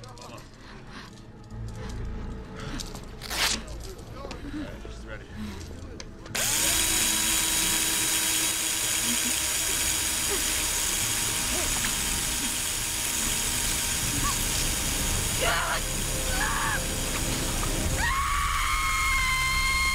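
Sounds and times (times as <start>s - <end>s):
surgical drill whine: 6.4s - 19.9s.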